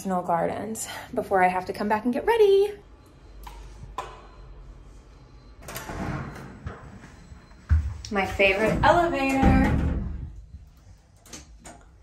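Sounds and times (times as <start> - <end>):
elevator door opening: 5.6 - 7.1.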